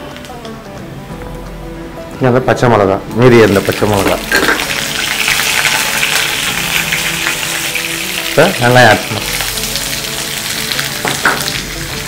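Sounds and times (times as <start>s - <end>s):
hot oil sizzling with crackles: 0.0s - 0.8s, 3.0s - 12.0s.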